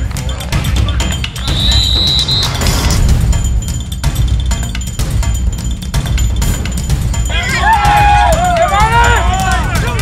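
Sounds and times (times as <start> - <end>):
music with heavy low beat: 0.0 - 10.0
high whistle-like tone: 1.4 - 3.0.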